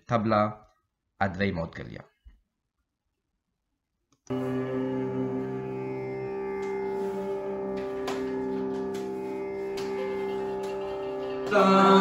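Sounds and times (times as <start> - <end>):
drone: 4.3 - 12.0.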